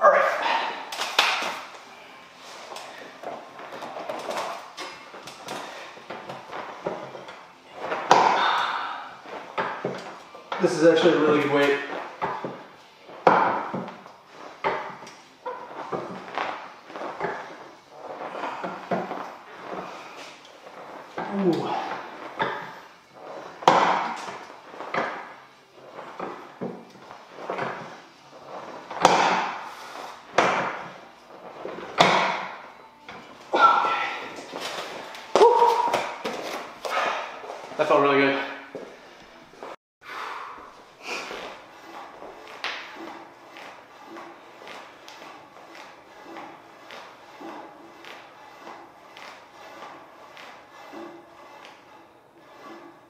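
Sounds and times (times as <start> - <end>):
person breathing hard and grunting: 0.2 - 0.9, 8.3 - 9.2.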